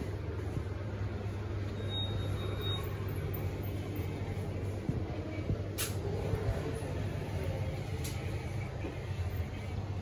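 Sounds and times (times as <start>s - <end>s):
shop background noise: 0.0s - 10.0s
steady low hum: 0.0s - 10.0s.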